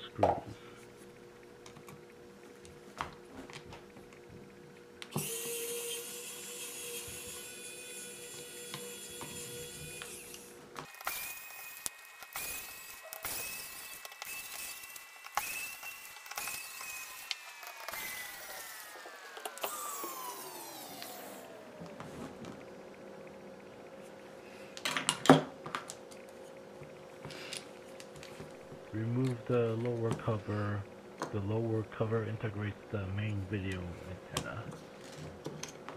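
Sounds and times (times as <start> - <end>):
electric screwdriver whine: 5.1 - 21.8.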